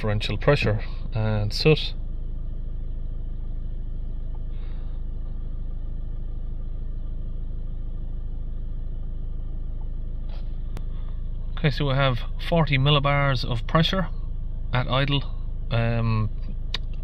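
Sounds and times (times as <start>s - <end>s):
diesel engine idling: 0.0s - 17.0s.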